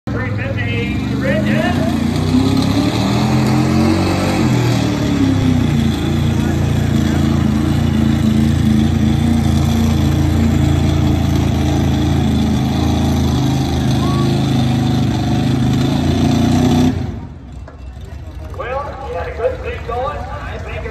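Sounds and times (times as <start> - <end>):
truck engine revving hard: 0.2 - 17.4.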